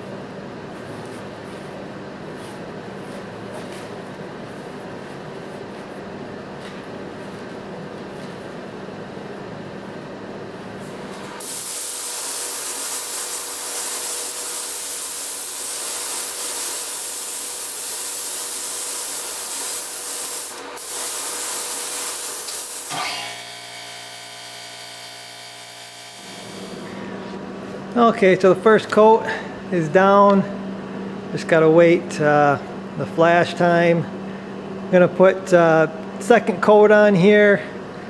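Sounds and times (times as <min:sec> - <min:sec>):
paint spray gun hissing: 0:11.4 - 0:23.0
steady hum: 0:19.1 - 0:38.0.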